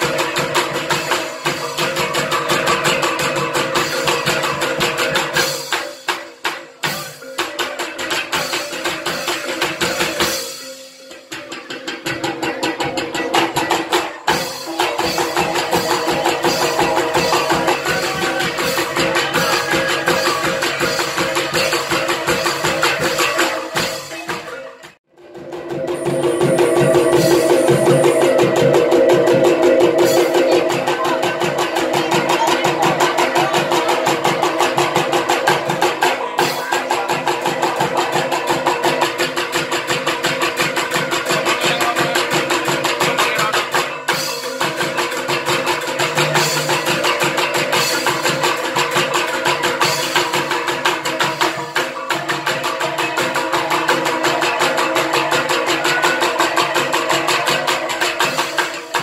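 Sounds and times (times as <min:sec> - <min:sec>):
folk dance music with percussion: 0:00.0 - 0:59.0
sustained pitched tones: 0:25.2 - 0:32.8.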